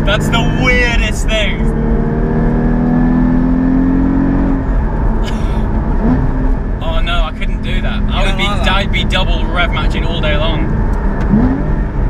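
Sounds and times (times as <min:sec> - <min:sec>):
car engine under load: 0:00.0 - 0:12.0
people talking and laughing: 0:06.8 - 0:09.6.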